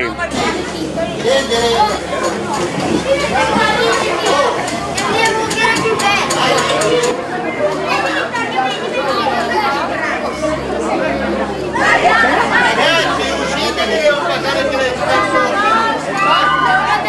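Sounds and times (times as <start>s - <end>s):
young voices chattering: 0.0s - 17.0s.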